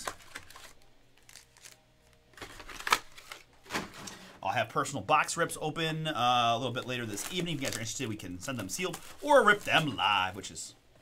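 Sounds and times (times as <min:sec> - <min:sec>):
cardboard box and packs rustling: 0:06.9 - 0:10.2.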